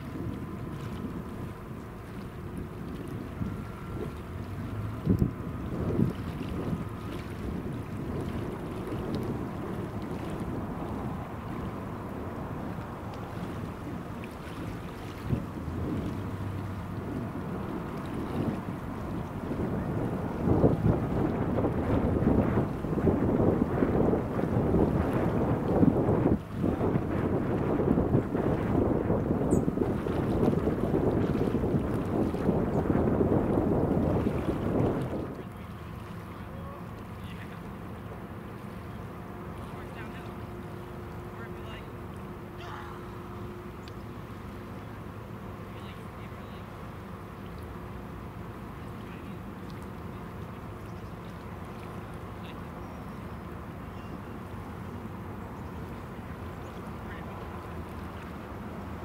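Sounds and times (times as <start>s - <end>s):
wind buffeting microphone: 0.0s - 36.8s.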